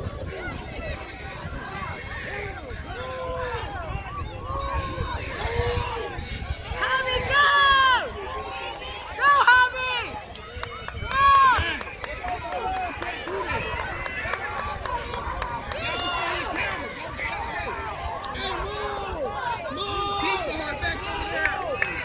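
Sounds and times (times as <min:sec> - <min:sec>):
spectators shouting encouragement: 0:00.0 - 0:22.0.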